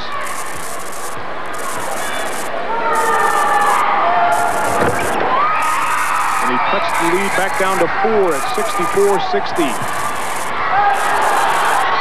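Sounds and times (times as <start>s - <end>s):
crowd shouting: 0.0s - 12.0s
crowd voices din: 0.0s - 12.0s.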